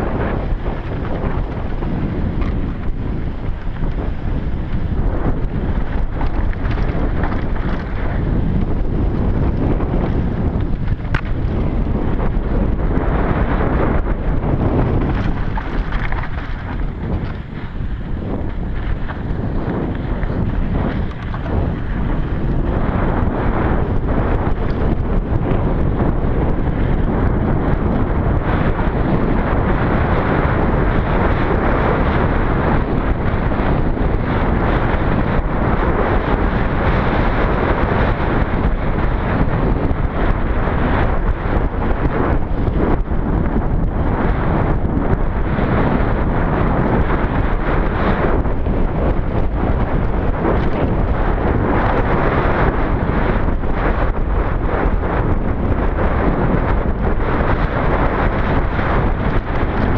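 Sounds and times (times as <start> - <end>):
bike clicks and rattles: 0.0 - 56.3
bike tyre noise: 0.0 - 59.9
wind buffeting microphone: 0.0 - 59.9.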